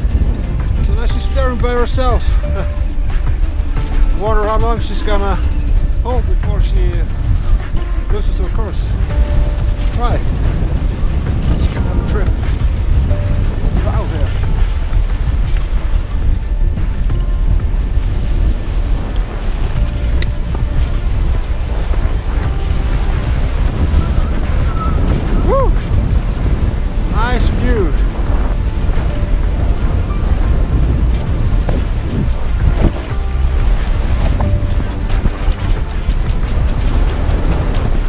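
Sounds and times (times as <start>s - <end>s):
sea breaking along hull: 0.0s - 38.0s
wind buffeting microphone: 0.0s - 38.0s.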